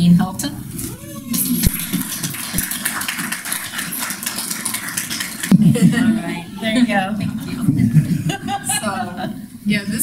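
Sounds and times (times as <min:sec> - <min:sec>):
audience clapping: 0:01.3 - 0:06.1.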